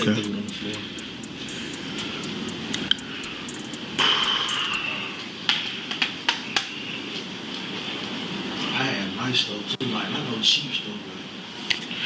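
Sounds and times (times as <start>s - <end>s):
rushing background noise: 0.0s - 12.0s.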